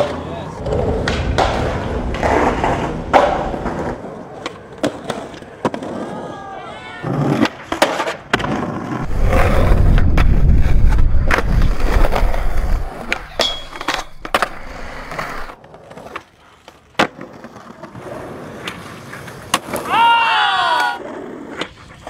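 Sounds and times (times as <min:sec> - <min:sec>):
skateboard clacking: 0:00.0 - 0:06.1, 0:07.1 - 0:08.7, 0:10.9 - 0:19.9
skateboard wheels rumbling on concrete: 0:00.0 - 0:22.0.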